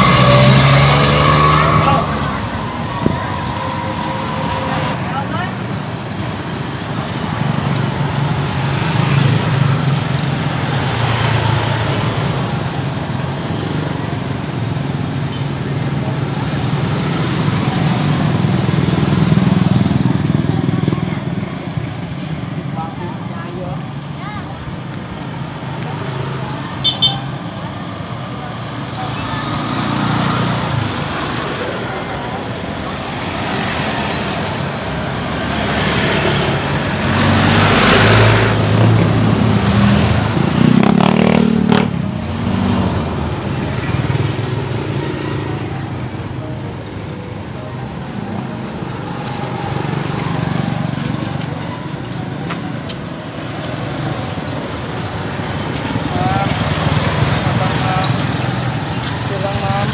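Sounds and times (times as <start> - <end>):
cars driving past: 0.0 - 23.9, 24.7 - 59.9.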